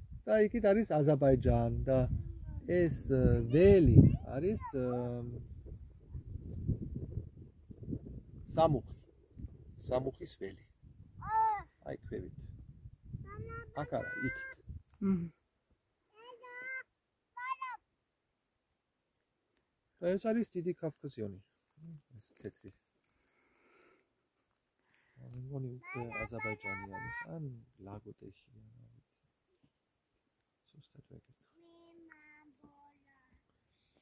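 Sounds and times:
faint voice: 0:11.2 - 0:11.8, 0:13.2 - 0:15.4.

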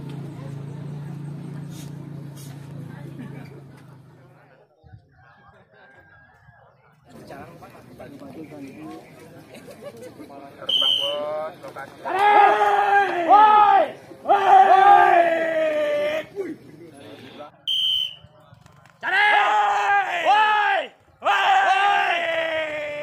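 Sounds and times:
short high whistle: 0:10.7 - 0:11.2, 0:17.7 - 0:18.2
men shouting drawn-out calls: 0:12.0 - 0:16.6, 0:19.0 - 0:23.0.

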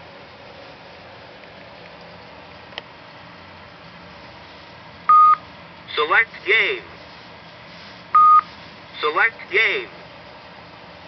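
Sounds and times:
short electronic beep: 0:05.1 - 0:05.4, 0:08.2 - 0:08.5.

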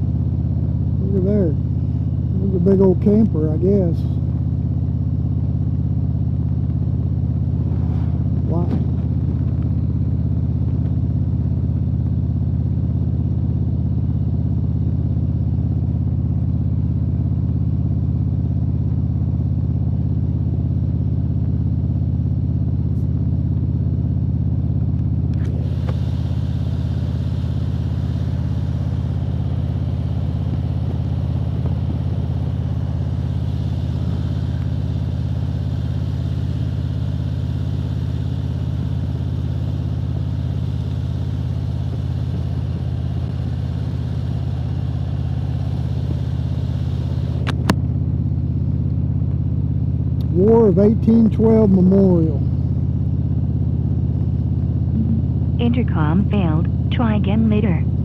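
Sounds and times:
motorcycle engine cruising: 0:00.0 - 0:58.0
wind and road noise: 0:06.4 - 0:11.1.

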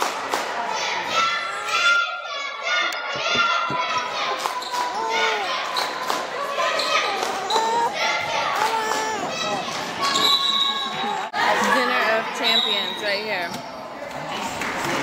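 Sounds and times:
children's voices echoing: 0:00.6 - 0:10.2.

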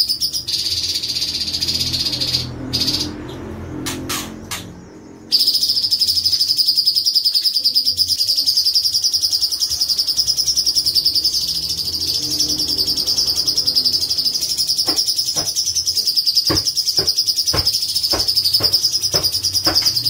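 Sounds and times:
bird singing a rapid trill: 0:00.0 - 0:20.0.

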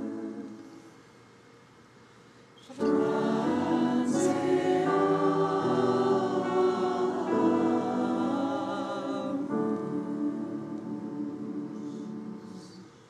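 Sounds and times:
choir singing held chords: 0:00.0 - 0:00.9, 0:02.7 - 0:13.0.

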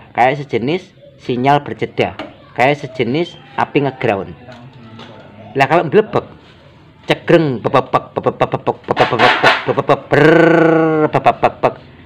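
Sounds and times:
man imitating engine sputtering: 0:07.7 - 0:11.9.

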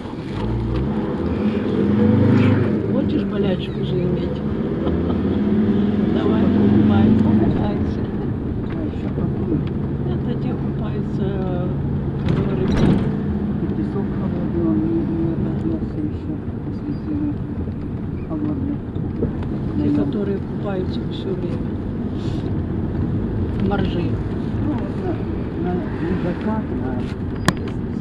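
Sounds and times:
indistinct voices: 0:00.0 - 0:22.5, 0:23.5 - 0:28.0
bus engine running: 0:00.0 - 0:28.0.

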